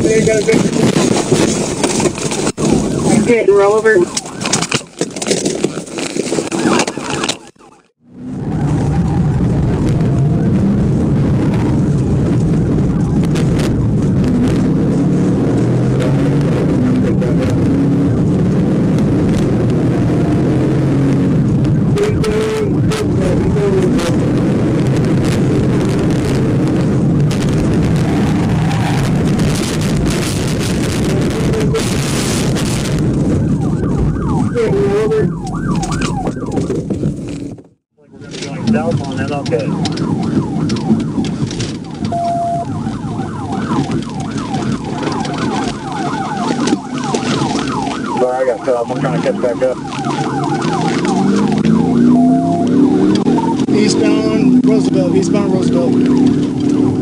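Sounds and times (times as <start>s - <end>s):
car engine and road noise: 0.0s - 57.0s
faint siren wailing: 1.0s - 37.1s, 38.0s - 57.0s.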